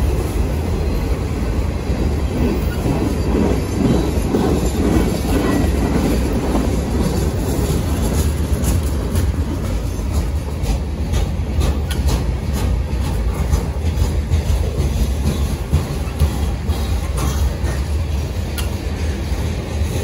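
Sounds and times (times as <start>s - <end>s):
freight train rumbling on rails: 0.0s - 20.0s
train wheels clicking and rattling: 0.0s - 20.0s.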